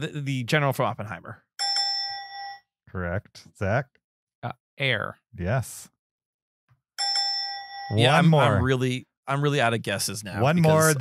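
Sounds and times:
bell-like ding: 0:01.6 - 0:02.6, 0:07.0 - 0:08.6.

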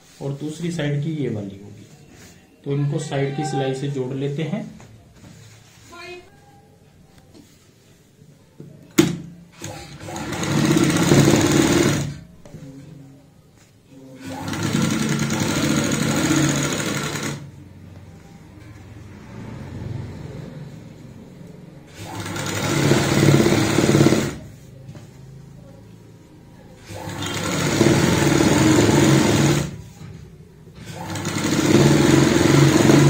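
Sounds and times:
sewing machine stitching: 0:09.6 - 0:12.2, 0:14.2 - 0:17.6, 0:21.9 - 0:24.6, 0:26.8 - 0:29.9, 0:30.8 - 0:33.0.

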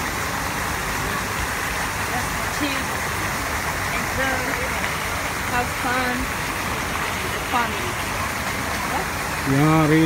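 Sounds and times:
waterfall rushing into pond: 0:00.0 - 0:10.0.

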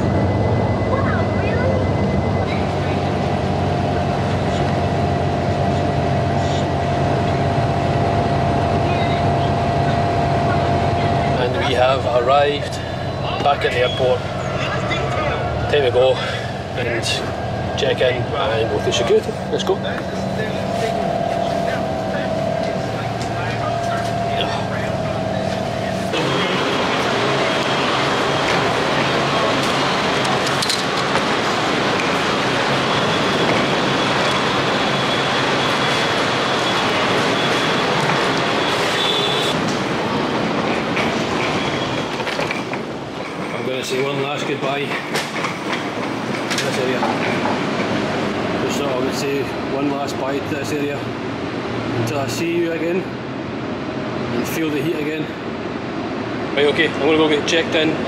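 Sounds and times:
bus engine and air-conditioning hum: 0:00.0 - 0:58.0.

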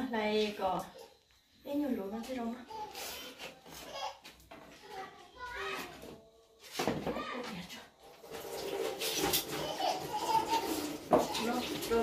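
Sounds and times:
leafy greens rustling in a bowl: 0:08.1 - 0:12.0.

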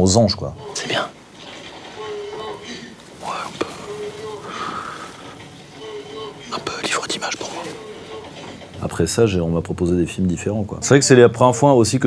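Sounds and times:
man whispering: 0:00.6 - 0:01.2, 0:02.0 - 0:08.3.

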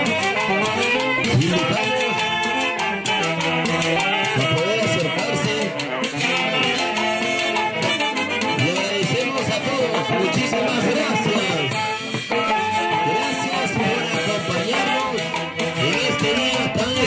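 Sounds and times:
drums and percussion: 0:00.0 - 0:17.0
orchestra playing lively melody: 0:00.0 - 0:17.0.

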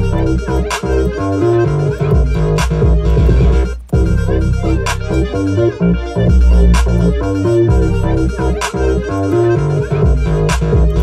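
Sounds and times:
synth notes: 0:00.0 - 0:11.0
trap beat with heavy bass: 0:00.0 - 0:11.0
sharp beat hit: 0:01.9 - 0:09.1.

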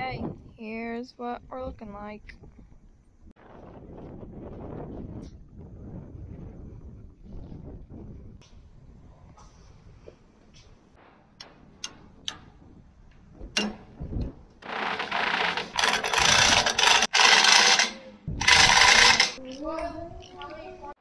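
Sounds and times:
cordless impact driver running: 0:14.6 - 0:19.4
mallet tapping metal sprocket: 0:15.4 - 0:19.4.

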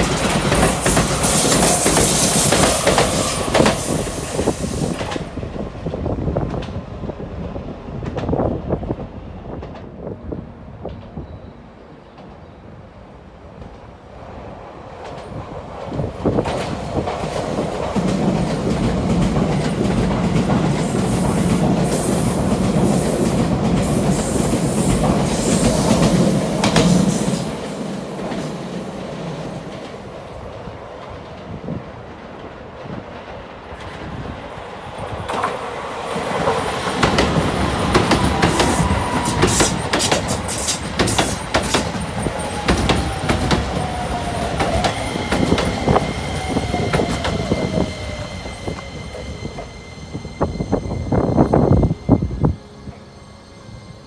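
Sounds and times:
train wheels clicking over rail joints: 0:00.0 - 0:05.4, 0:15.0 - 0:30.0, 0:35.2 - 0:49.7
express train passing rumble: 0:00.0 - 0:54.0.

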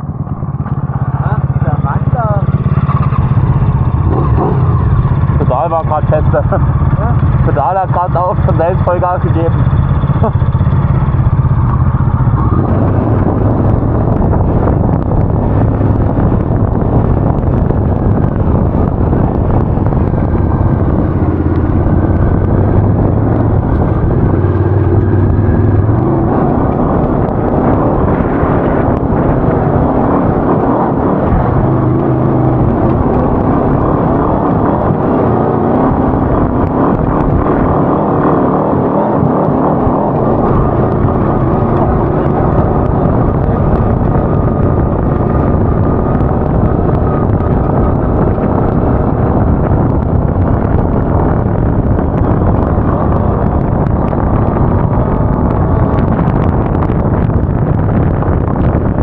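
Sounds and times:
buggy engine revving: 0:00.0 - 0:59.0
wind on microphone: 0:00.0 - 0:59.0.

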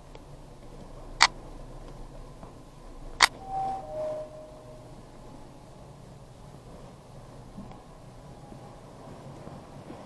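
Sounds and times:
sharp clicks: 0:00.1 - 0:02.0
elevator two-note chime: 0:03.3 - 0:09.0.

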